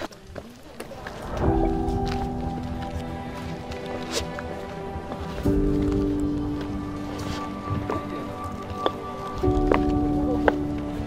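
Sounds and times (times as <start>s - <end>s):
held music chord: 1.1s - 11.0s.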